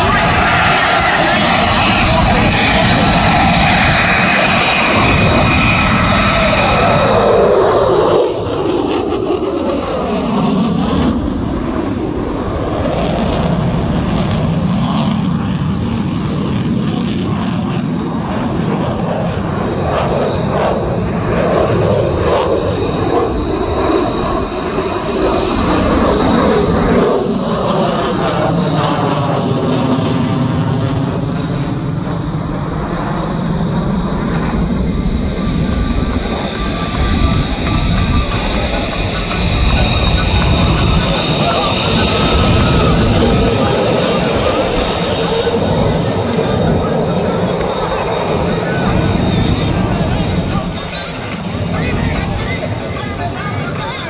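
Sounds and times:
jet engines roaring overhead: 0:00.0 - 0:54.0.

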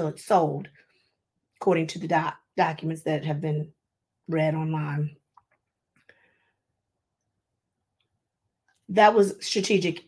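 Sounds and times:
woman speaking: 0:00.0 - 0:00.8, 0:01.6 - 0:05.3, 0:08.8 - 0:10.0.

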